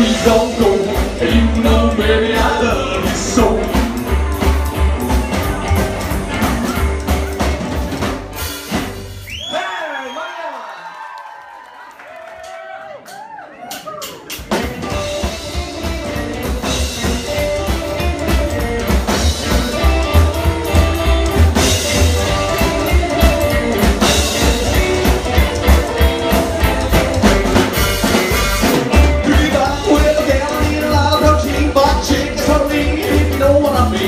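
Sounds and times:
rockabilly band playing live: 0:00.0 - 0:09.5, 0:13.0 - 0:34.0.

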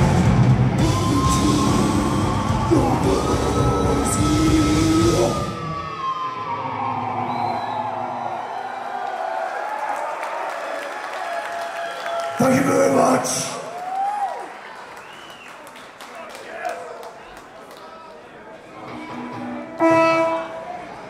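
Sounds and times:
death metal band playing: 0:00.0 - 0:06.2
guitar feedback: 0:00.0 - 0:08.3, 0:18.8 - 0:21.0
crowd cheering and whooping: 0:00.0 - 0:12.6, 0:13.6 - 0:15.5.

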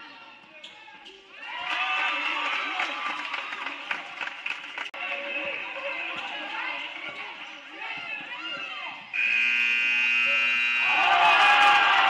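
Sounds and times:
scoreboard buzzer horn: 0:09.2 - 0:12.0
crowd shouting: 0:10.8 - 0:12.0.

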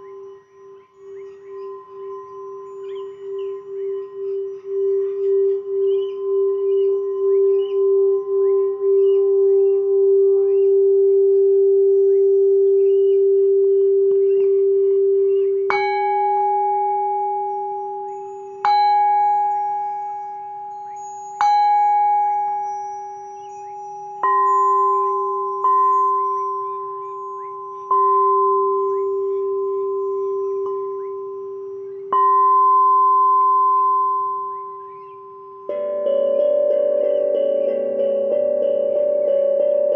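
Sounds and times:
singing bowl struck: 0:00.0 - 0:10.7, 0:15.7 - 0:35.8
singing bowl rim ringing: 0:00.0 - 0:39.9.

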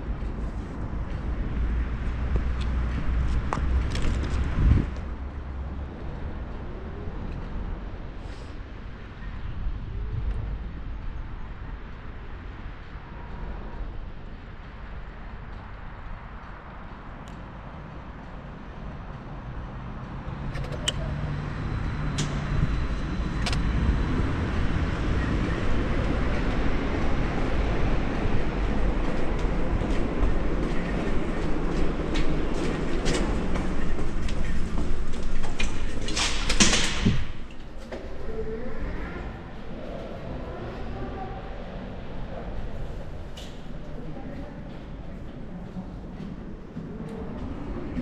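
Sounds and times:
wind noise on microphone: 0:00.0 - 0:20.4, 0:21.4 - 0:44.2
loud rattling and clattering: 0:29.8 - 0:37.7.

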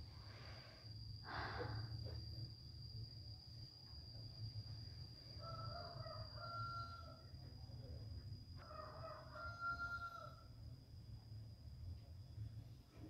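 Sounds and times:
rooster crowing: 0:05.4 - 0:07.3, 0:08.6 - 0:10.5.

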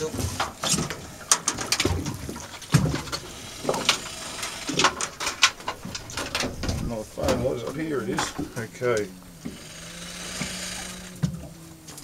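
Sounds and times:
crocodile grunting: 0:02.8 - 0:05.1, 0:08.0 - 0:11.9.

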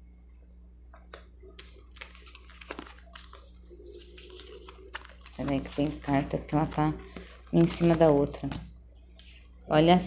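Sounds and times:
low steady hum: 0:00.0 - 0:10.0
cards rustling and clicking: 0:01.0 - 0:09.5.

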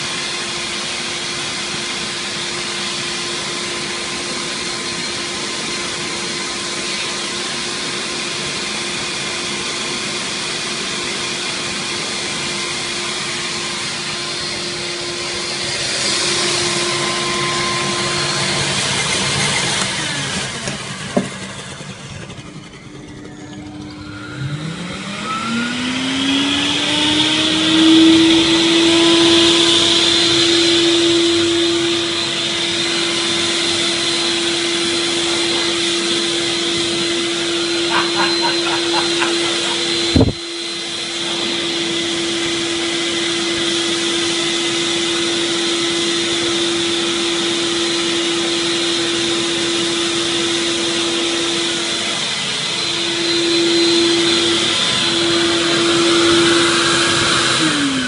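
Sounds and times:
vacuum cleaner motor whine: 0:00.0 - 0:58.0.

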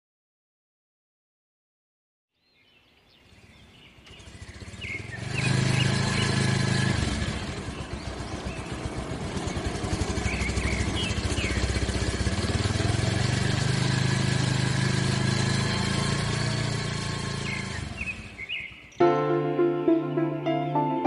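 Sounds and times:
motorcycle engine running: 0:03.3 - 0:19.0
faint bird chirps: 0:07.7 - 0:12.1, 0:17.3 - 0:19.0.

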